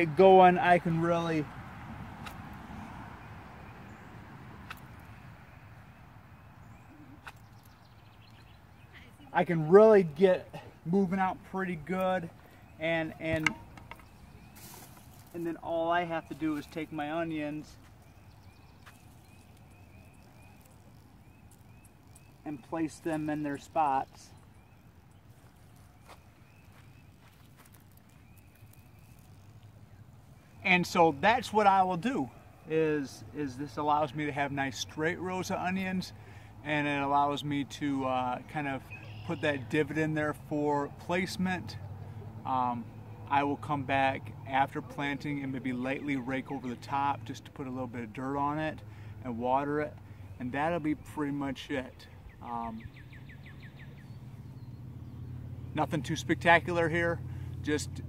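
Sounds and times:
soft clicks and crunches in soil: 0:13.3 - 0:15.6, 0:16.2 - 0:31.0.

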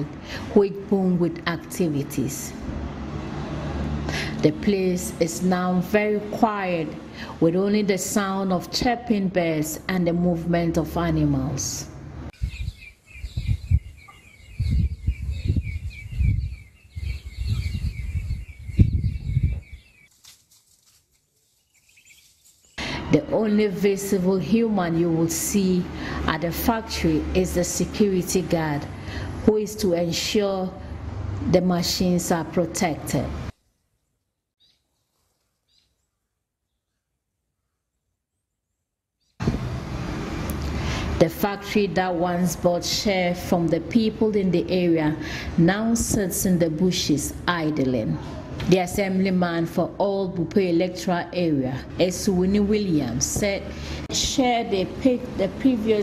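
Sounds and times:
wind buffeting microphone: 0:12.3 - 0:20.0
birds chirping: 0:12.3 - 0:20.2, 0:21.4 - 0:23.0.

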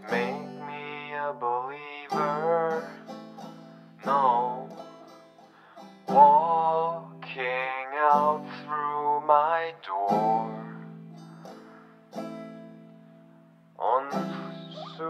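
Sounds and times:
person singing: 0:00.0 - 0:03.2, 0:04.0 - 0:04.8, 0:06.1 - 0:10.9, 0:13.8 - 0:15.0
plucked guitar: 0:00.0 - 0:15.0.

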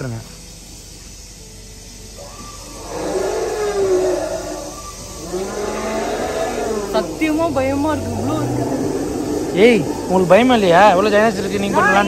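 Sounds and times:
dinosaur roar from loudspeaker: 0:02.7 - 0:07.2, 0:08.0 - 0:10.3.

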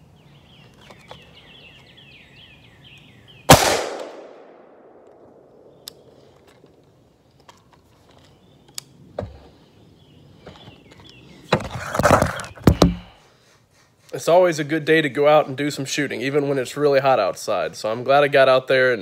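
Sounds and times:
birds chirping: 0:00.0 - 0:03.6, 0:05.2 - 0:19.0
rifle shot echoing: 0:03.5 - 0:06.1
knocks and handling noise: 0:10.4 - 0:13.1.

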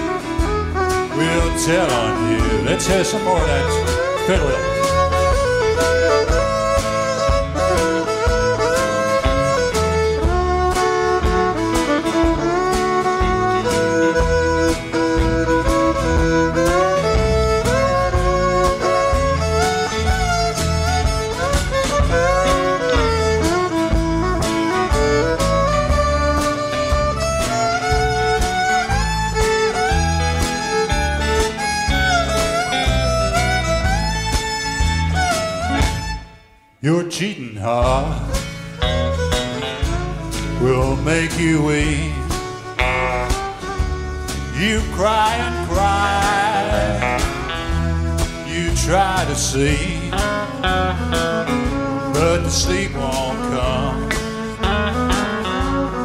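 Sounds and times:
fiddle solo with sliding notes: 0:00.0 - 0:36.8, 0:37.8 - 0:56.0
bass: 0:00.0 - 0:56.0
drums: 0:00.0 - 0:56.0
guitar: 0:00.0 - 0:56.0.

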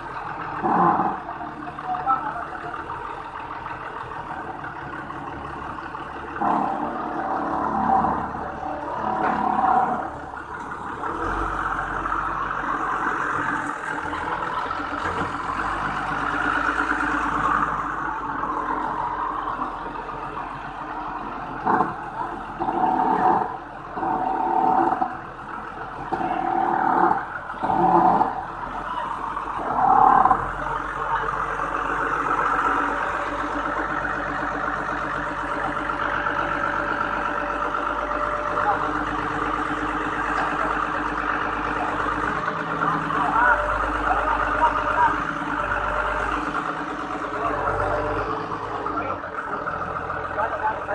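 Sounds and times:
forklift engine running: 0:00.0 - 0:50.9.

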